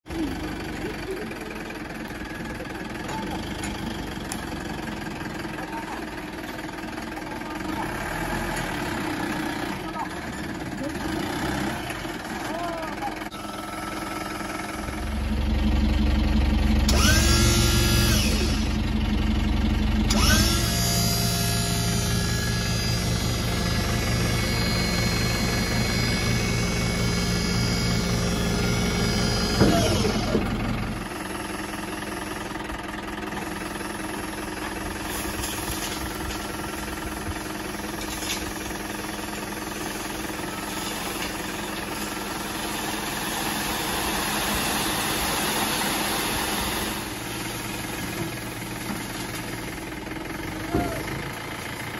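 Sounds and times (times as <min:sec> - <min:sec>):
diesel engine revving: 0:07.4 - 0:51.9
hydraulic pump whine: 0:13.3 - 0:19.0, 0:19.7 - 0:31.2.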